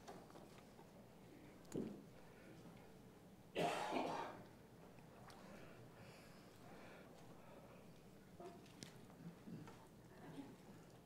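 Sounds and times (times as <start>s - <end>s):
man clearing throat: 3.6s - 4.4s.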